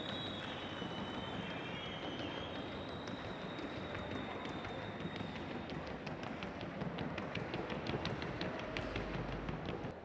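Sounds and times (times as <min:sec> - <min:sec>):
hoofbeats on wooden board: 0:05.2 - 0:10.0.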